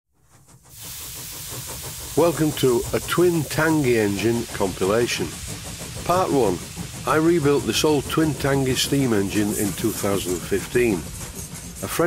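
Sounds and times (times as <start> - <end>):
steady hiss: 0.3 - 12.0.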